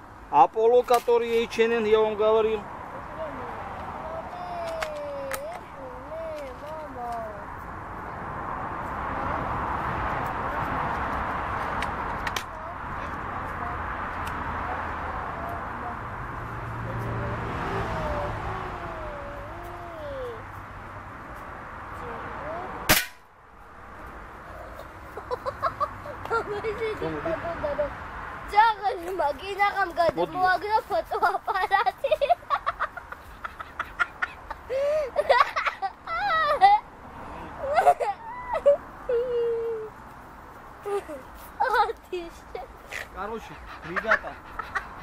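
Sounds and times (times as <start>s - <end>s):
air rifle shot: 22.9s - 23.2s.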